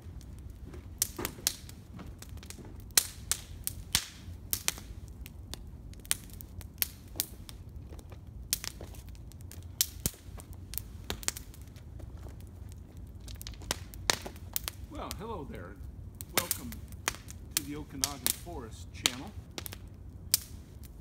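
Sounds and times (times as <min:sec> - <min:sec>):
campfire crackling and popping: 0:00.0 - 0:21.0.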